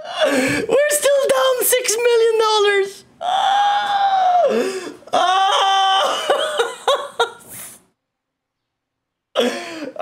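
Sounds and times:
man laughing: 6.0s - 7.5s.

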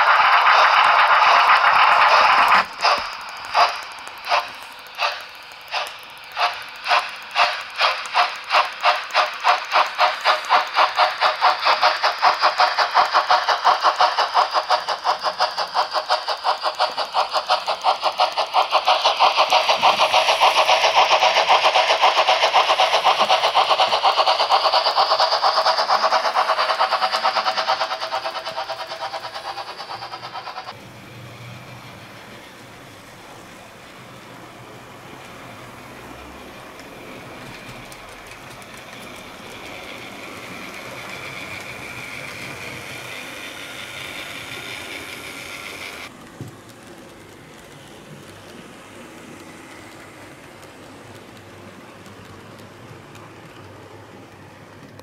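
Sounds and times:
hissing steam exhaust chuffs: 0.0s - 55.0s.

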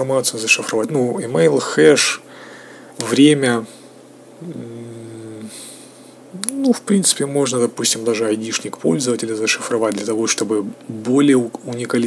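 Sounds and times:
short breath in: 2.3s - 2.9s
man's hesitation hum: 3.6s - 7.0s.

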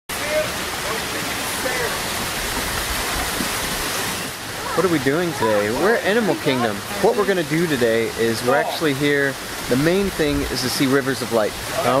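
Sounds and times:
small waterfall splashing over rocks: 0.1s - 12.0s.

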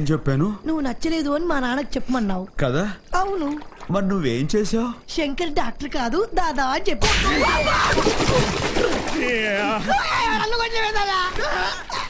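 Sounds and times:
water splashing: 3.2s - 4.3s, 7.1s - 11.9s.

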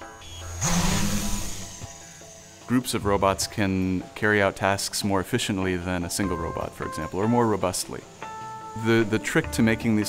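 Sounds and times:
drone propellers buzzing: 0.0s - 4.1s
background music: 0.0s - 10.0s
loud hiss: 0.4s - 3.0s.

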